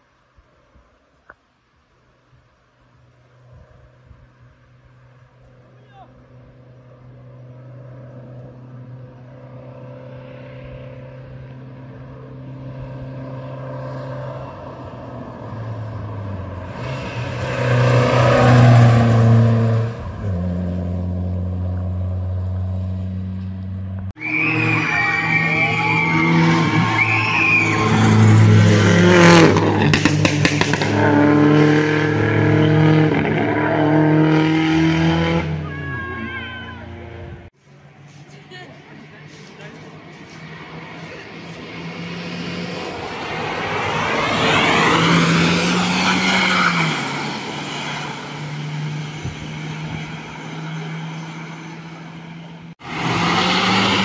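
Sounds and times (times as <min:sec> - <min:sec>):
rally car engine high revs: 0:24.4 - 0:35.8, 0:52.8 - 0:54.0.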